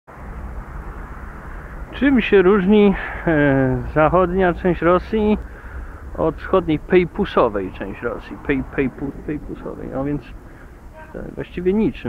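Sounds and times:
distant road traffic rumble: 0.1s - 12.0s.

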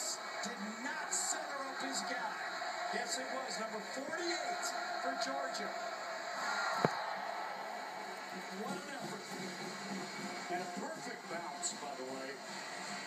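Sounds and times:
indistinct television voices: 0.0s - 13.0s.

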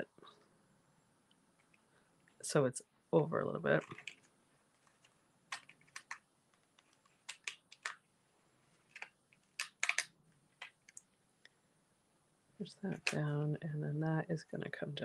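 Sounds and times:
paper clicks and taps: 4.9s - 8.0s, 8.9s - 11.0s.

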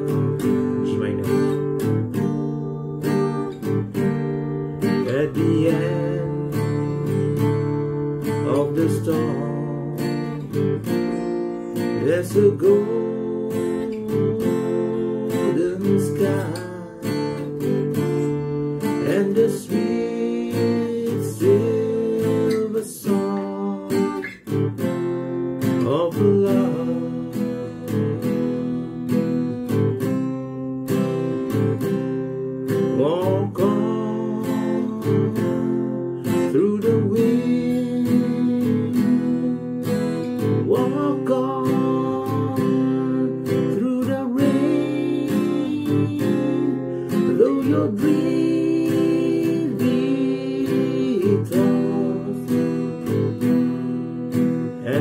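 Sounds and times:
man singing: 0.0s - 4.1s, 4.7s - 31.9s, 32.6s - 55.0s
acoustic guitar strumming: 0.0s - 55.0s.

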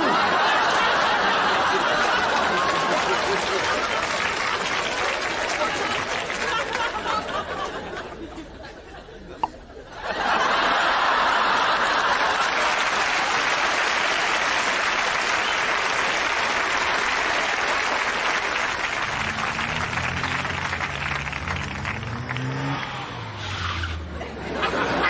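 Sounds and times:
audience applause: 0.0s - 8.2s, 10.1s - 23.2s
car engine accelerating: 18.4s - 25.0s.

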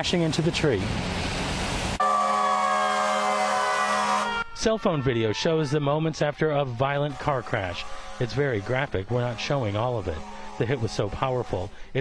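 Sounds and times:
emergency vehicle siren: 2.0s - 8.2s.

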